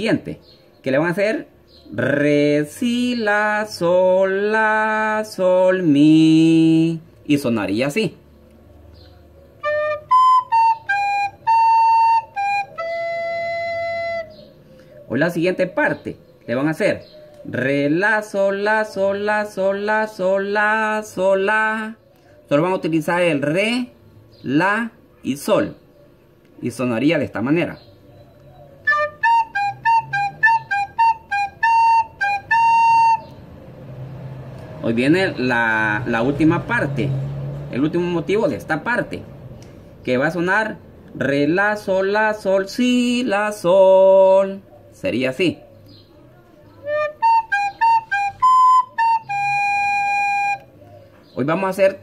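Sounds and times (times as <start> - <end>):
soprano recorder melody: 9.6 - 14.6, 28.2 - 33.4, 46.8 - 51.0.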